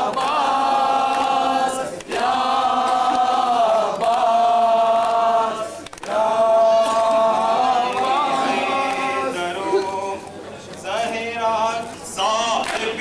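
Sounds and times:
men chanting a lament: 0:00.0 - 0:13.0.

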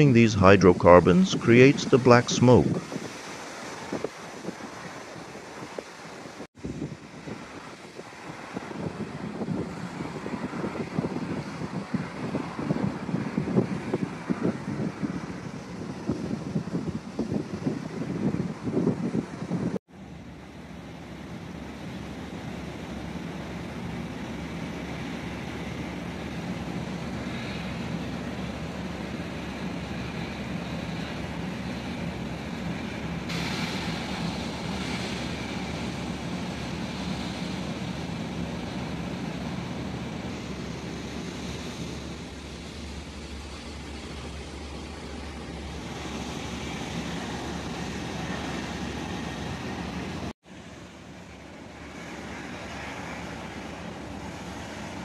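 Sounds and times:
wind buffeting microphone: 0:01.8 - 0:19.8.

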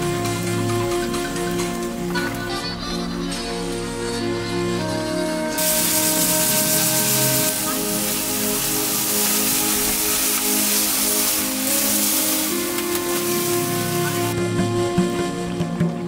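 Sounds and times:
background music: 0:00.0 - 0:16.0
meat sizzling on a grill: 0:05.6 - 0:14.4.

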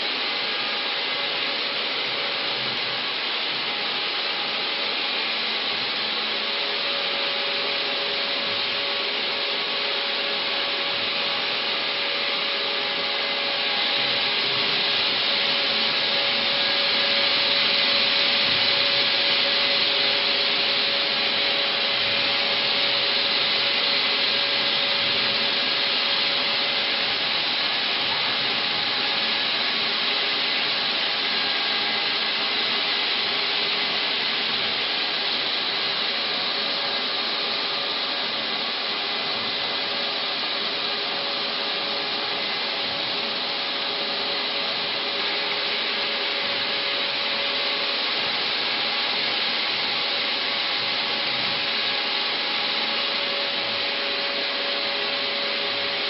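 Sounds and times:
laser machine whirring and humming: 0:00.0 - 0:56.0.

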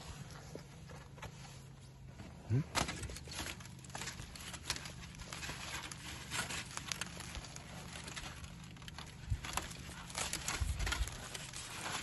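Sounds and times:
foil crinkling and crackling: 0:02.5 - 0:12.0.

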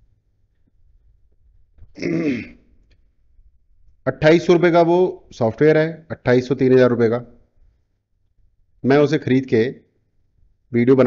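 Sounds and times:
man clearing his throat: 0:02.0 - 0:02.6.

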